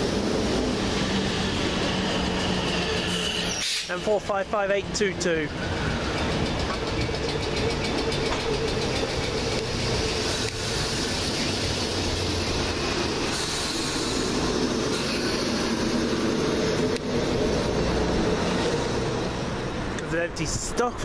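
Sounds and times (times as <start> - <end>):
train wheels clicking over rails: 0.0 - 20.1
electric train rumble and motor hum: 0.0 - 20.7.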